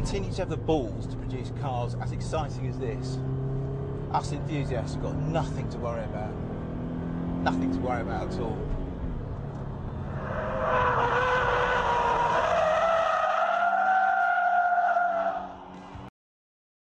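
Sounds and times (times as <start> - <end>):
tyre squeal: 10.1 - 15.4.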